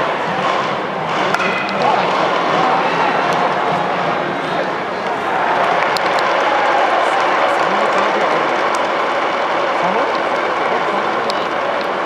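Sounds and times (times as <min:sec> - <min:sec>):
crowd applause and murmur: 0:00.0 - 0:12.0.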